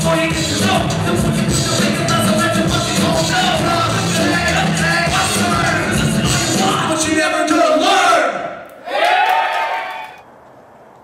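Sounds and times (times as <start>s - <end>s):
rapping over amplified beat: 0.0s - 8.4s.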